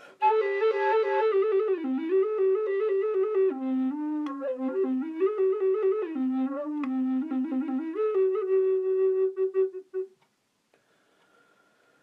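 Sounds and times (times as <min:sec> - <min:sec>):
recorder notes: 0:00.2 - 0:10.4.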